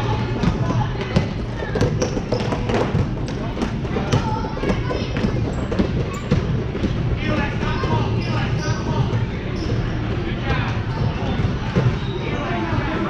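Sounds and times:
basketballs bouncing on gym floor: 0:00.1 - 0:12.3.

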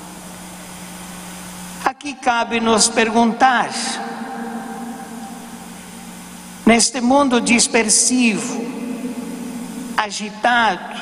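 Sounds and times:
low electrical hum: 0:00.0 - 0:11.0
steady hiss: 0:00.0 - 0:11.0
person speaking: 0:01.8 - 0:11.0.

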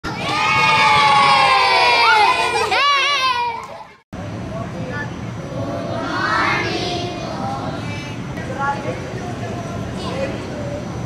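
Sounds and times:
children shouting a cheer: 0:00.1 - 0:04.0.

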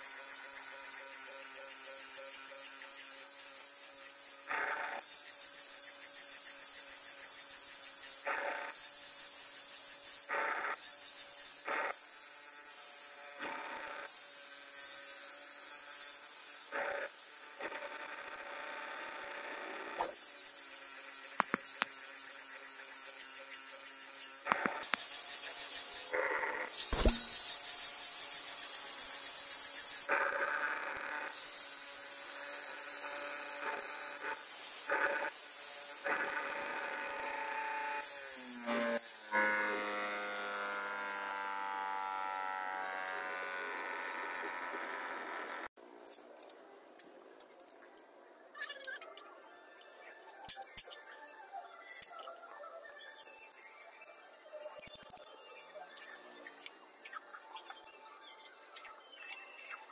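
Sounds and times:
grinder motor humming: 0:00.0 - 0:45.7
grinder wheel rasping on steel: 0:12.7 - 0:37.5, 0:38.5 - 0:45.7.

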